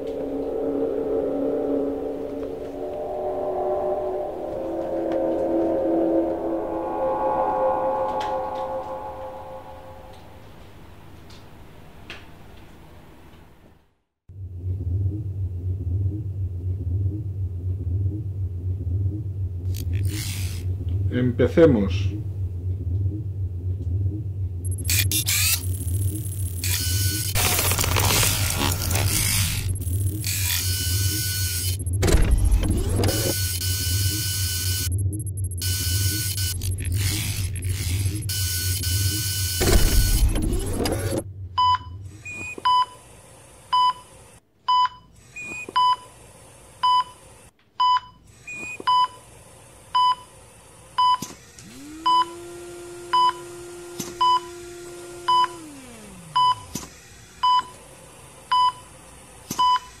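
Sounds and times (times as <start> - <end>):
low sliding tone: 0.0 - 10.7
whooshing swells: 0.0 - 10.7
patient monitor beeping: 38.1 - 40.3.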